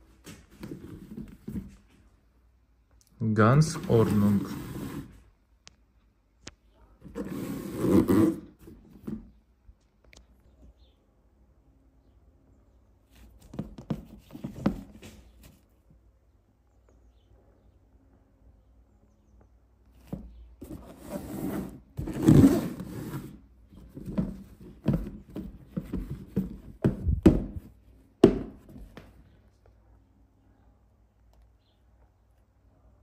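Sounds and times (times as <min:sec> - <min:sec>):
shoe fabric rustling: 0:13.1 - 0:15.7, 0:20.0 - 0:29.1
dull knocks of shoes set down: 0:24.0 - 0:29.1.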